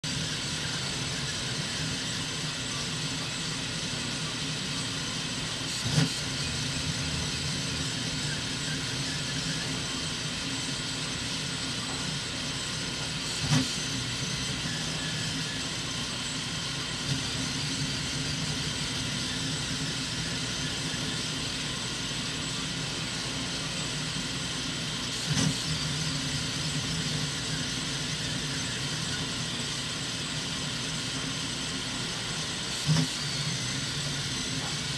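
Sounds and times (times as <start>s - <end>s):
printer stepper motors whirring: 0.0s - 34.9s
steady hum with high whines: 0.0s - 34.9s.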